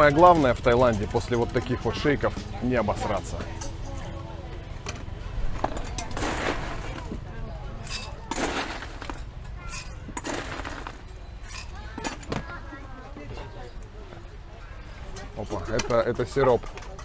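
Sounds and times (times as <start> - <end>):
ice cubes clattering into plastic jug: 5.7 - 7.1, 7.9 - 9.2, 9.8 - 11.0.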